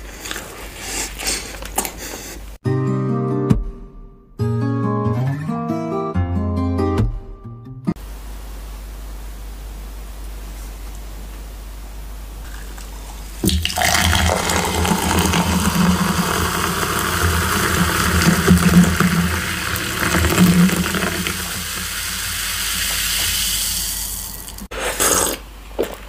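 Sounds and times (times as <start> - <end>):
fizz of bubbles: 13.4 - 24.7
water pouring into a glass: 13.4 - 24.7.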